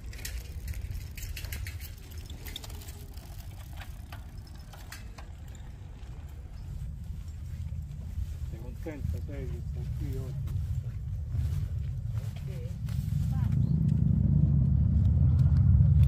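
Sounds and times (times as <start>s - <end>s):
bicycle rattling over stone paving: 0.0s - 13.7s
low rumble: 5.3s - 16.0s.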